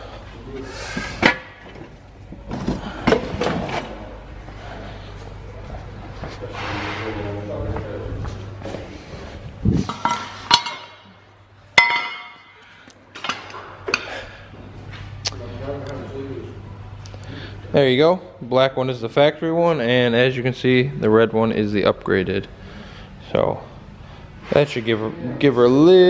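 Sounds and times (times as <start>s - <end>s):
low steady hum: 0.0s - 26.0s.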